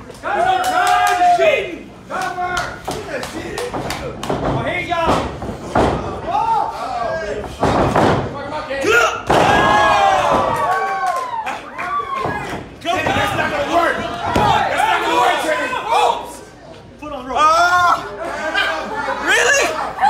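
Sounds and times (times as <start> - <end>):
loud shouts and yells: 0.2 - 2.8, 8.8 - 16.5.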